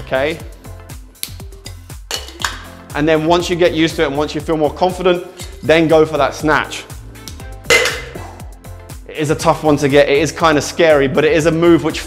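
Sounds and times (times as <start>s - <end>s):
background music: 0.0s - 12.0s
bottle clinking on cocktail shaker: 1.7s - 2.6s, 7.7s - 8.2s.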